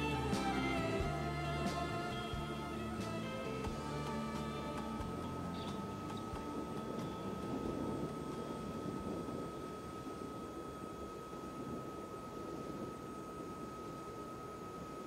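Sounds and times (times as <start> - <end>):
music: 0.0 - 9.5
high-pitched whine: 0.0 - 15.0.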